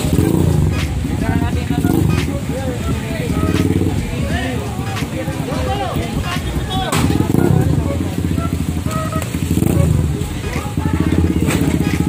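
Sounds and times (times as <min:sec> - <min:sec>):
motorcycle engine running: 0:00.0 - 0:12.0
people talking: 0:00.0 - 0:12.0.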